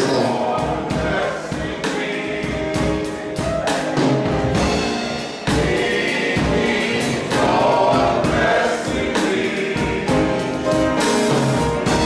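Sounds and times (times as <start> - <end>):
instrumental accompaniment with beat: 0.0 - 12.0
men's choir singing gospel: 0.0 - 12.0.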